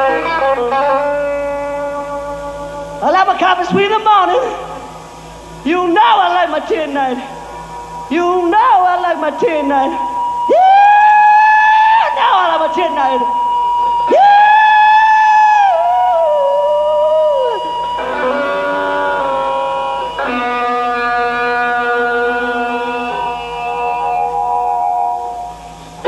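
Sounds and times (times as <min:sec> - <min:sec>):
electric guitar sustained notes: 0:00.0 - 0:26.0.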